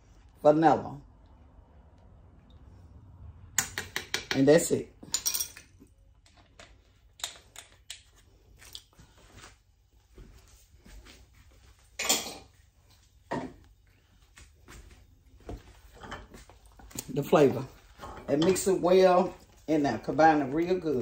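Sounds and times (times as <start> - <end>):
kitchen things clicking and knocking: 3.6 - 8.0, 17.9 - 19.3.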